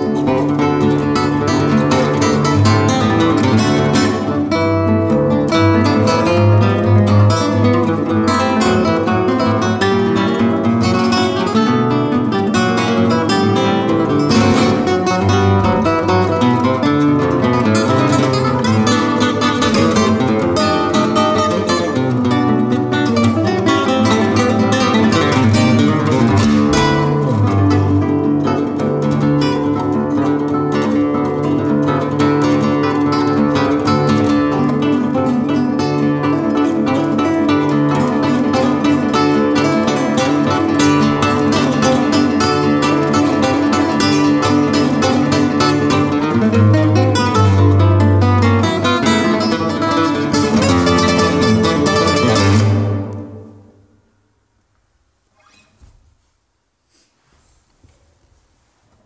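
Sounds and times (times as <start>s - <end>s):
classical guitar duo: 0.0s - 54.1s, 55.3s - 56.2s.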